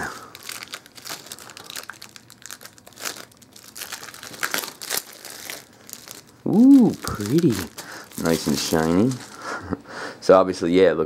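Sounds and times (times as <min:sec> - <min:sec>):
plastic wrap ripping: 0:00.0 - 0:09.6
plastic shrink wrap crinkling: 0:00.0 - 0:09.8.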